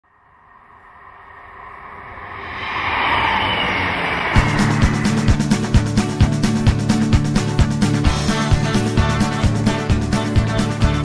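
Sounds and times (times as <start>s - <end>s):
passenger train passing: 0.1s - 8.7s.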